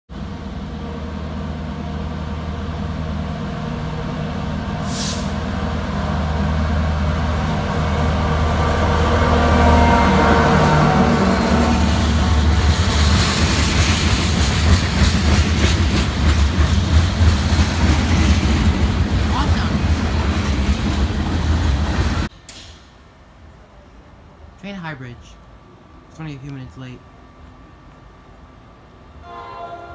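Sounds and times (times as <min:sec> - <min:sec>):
diesel locomotive engine: 0:00.1 - 0:29.9
train wheels clattering on rails: 0:11.8 - 0:22.8.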